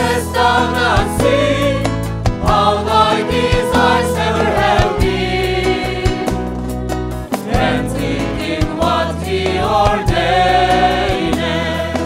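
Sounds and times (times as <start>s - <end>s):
mixed choir singing: 0.0s - 6.6s, 7.3s - 12.0s
drum kit beat: 0.0s - 12.0s
electric bass: 0.0s - 12.0s
guitar: 0.0s - 12.0s.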